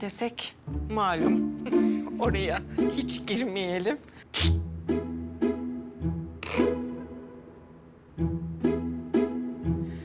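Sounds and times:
low cello and double bass notes: 0:00.7 - 0:03.7, 0:04.5 - 0:10.0
higher string notes: 0:00.8 - 0:03.8, 0:04.5 - 0:10.0.

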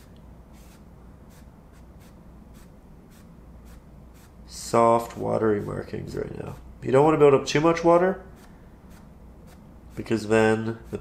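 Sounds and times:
paintbrush swishing on canvas: 0:00.0 - 0:06.7, 0:08.2 - 0:11.0.

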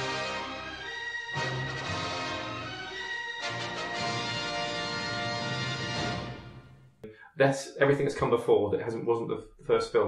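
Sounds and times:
music with held notes: 0:00.0 - 0:07.0.

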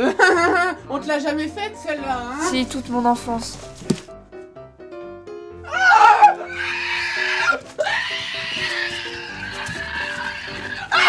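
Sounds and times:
background music: 0:00.0 - 0:11.0
harsh high-pitched cry: 0:05.7 - 0:11.0.

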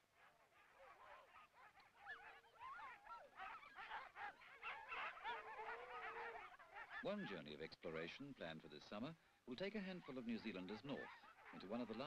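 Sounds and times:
huskies yelping and howling: 0:00.0 - 0:07.4, 0:10.0 - 0:12.0.

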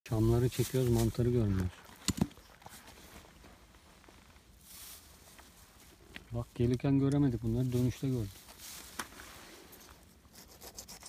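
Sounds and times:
rustling of pine needles and stems: 0:00.1 - 0:10.2.

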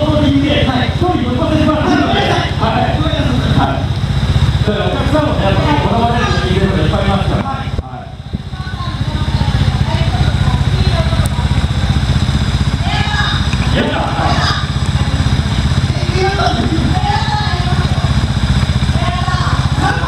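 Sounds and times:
motorcycle engine idling: 0:00.0 - 0:20.0
voices talking: 0:00.0 - 0:20.0.

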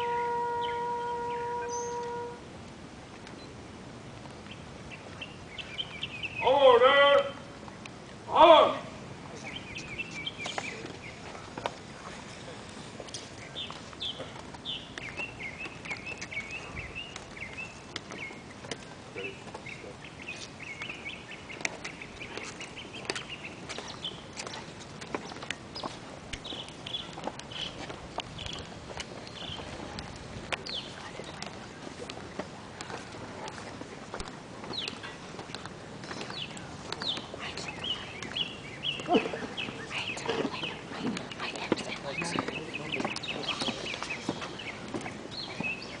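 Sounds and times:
bird chirping: 0:00.0 - 0:02.4, 0:04.3 - 0:06.9, 0:09.3 - 0:32.1, 0:34.6 - 0:46.0
footsteps on stone paving: 0:09.2 - 0:46.0
murmur of voices: 0:29.6 - 0:45.6.

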